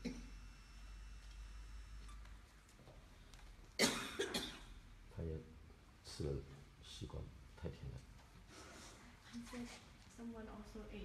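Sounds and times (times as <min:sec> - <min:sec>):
person coughing: 0:00.0 - 0:00.3, 0:03.8 - 0:04.8.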